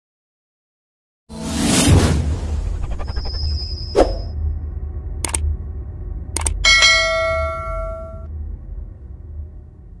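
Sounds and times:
steady low rumble: 2.2s - 10.0s
bell ding: 6.6s - 8.3s.

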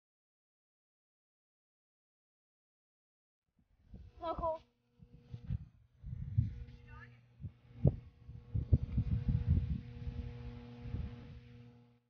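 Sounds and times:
electrical hum: 3.7s - 12.0s
low thumps on microphone: 5.1s - 6.8s, 7.4s - 11.4s.

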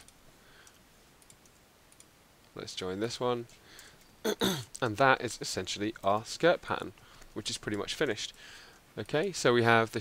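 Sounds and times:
faint computer mouse clicks: 0.0s - 2.6s.

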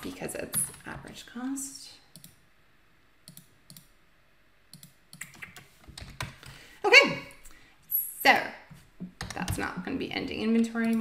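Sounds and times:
keyboard and mouse clicks: 2.1s - 2.4s, 3.2s - 3.9s, 4.7s - 6.6s, 9.0s - 9.7s, 10.6s - 11.0s.

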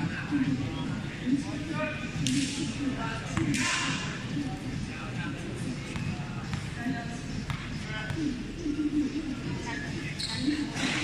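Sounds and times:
chatter of spectators: 0.0s - 11.0s
shoes squeaking: 10.0s - 11.0s.

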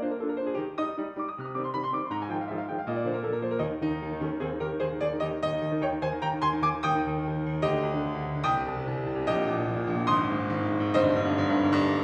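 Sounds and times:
piano chords: 0.0s - 12.0s.

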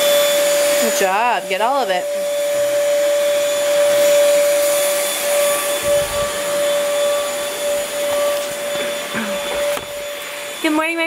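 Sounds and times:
stick vacuum running: 0.0s - 11.0s.

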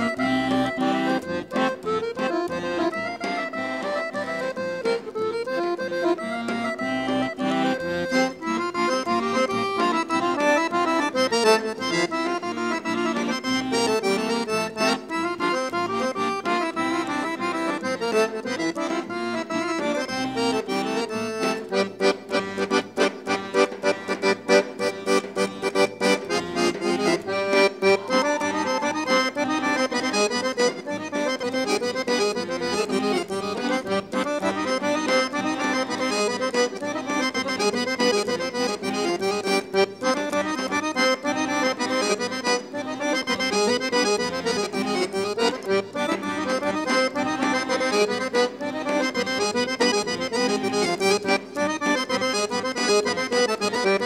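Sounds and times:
accordion folk dance music: 0.0s - 54.0s.

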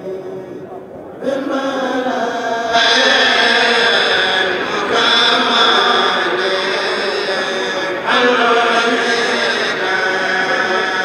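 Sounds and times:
men chanting in unison: 1.2s - 11.0s.

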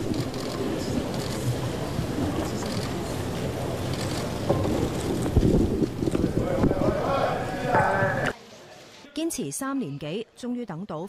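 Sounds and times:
crowded hall ambience hiss: 0.0s - 10.6s.

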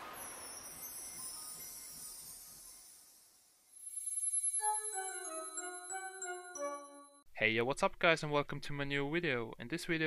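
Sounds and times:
whoosh: 0.0s - 2.4s
shimmering chime gliding down: 0.0s - 7.2s.

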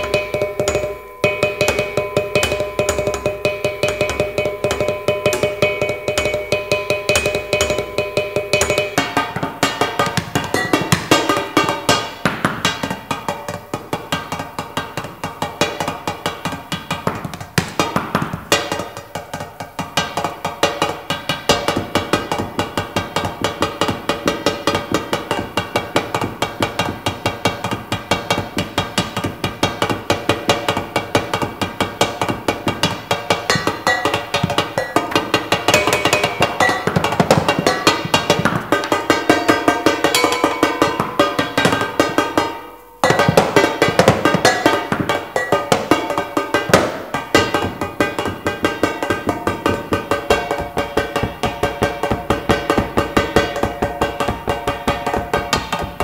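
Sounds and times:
metal percussion on tins and cymbals: 0.0s - 56.0s.

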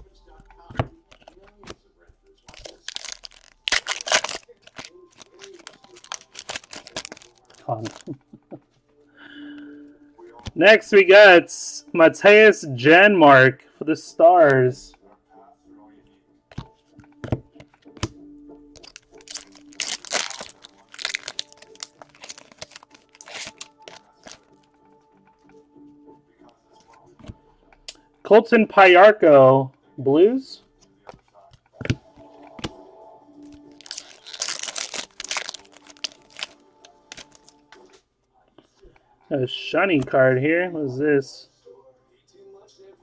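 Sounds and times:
cards clicking: 2.5s - 8.2s, 18.8s - 24.4s
plastic wrapper tearing and crinkling: 2.5s - 8.2s, 18.8s - 24.4s, 33.5s - 37.6s.

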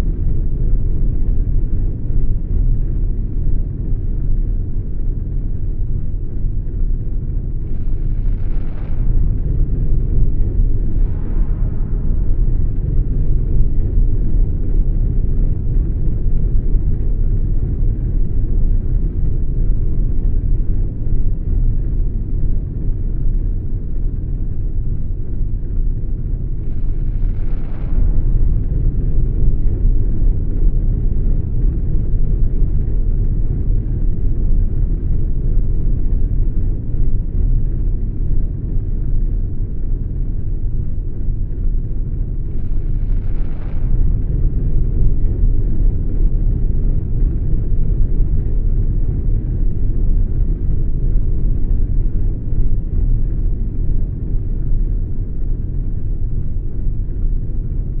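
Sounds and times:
deep rumbling drone: 0.0s - 58.0s.

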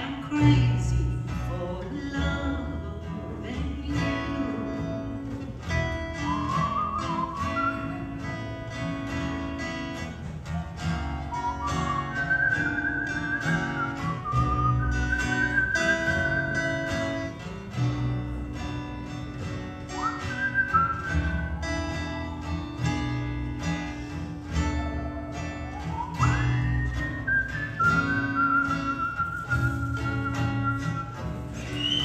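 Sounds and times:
lead guitar: 0.0s - 32.0s
plucked upright bass: 0.0s - 32.0s
strummed tenor guitar: 0.0s - 32.0s
whistled melody: 6.1s - 8.4s, 11.0s - 17.3s, 19.8s - 22.5s, 24.6s - 32.0s.

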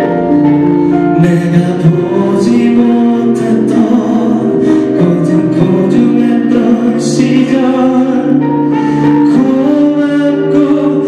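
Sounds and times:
man singing into a microphone: 0.0s - 11.0s
musical accompaniment: 0.0s - 11.0s.

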